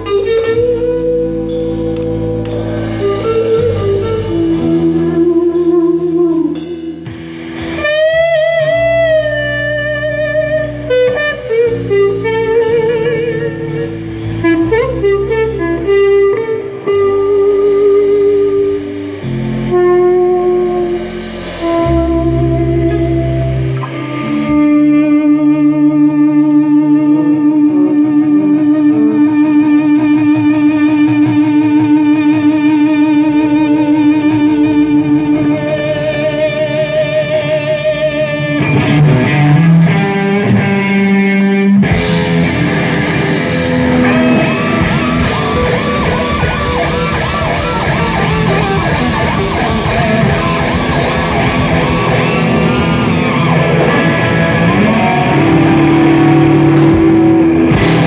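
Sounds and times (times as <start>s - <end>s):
electric guitar lead line: 0.0s - 58.0s.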